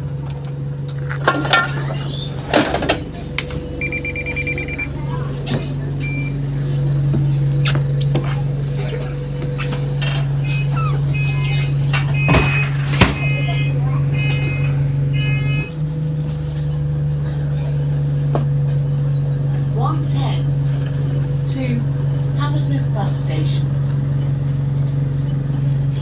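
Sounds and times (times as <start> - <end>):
bus engine and road drone: 0.0 - 26.0
rattles and knocks: 0.1 - 3.7
short high-pitched tones: 3.8 - 5.0.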